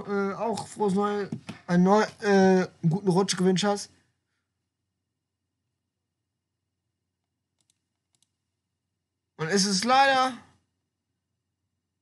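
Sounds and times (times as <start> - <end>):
faint clicks: 7.2 - 8.4.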